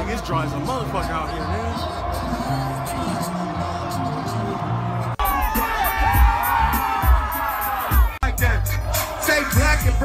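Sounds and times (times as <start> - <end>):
crowd screaming and cheering: 0.0 - 10.0
music with heavy bass beat: 5.1 - 10.0.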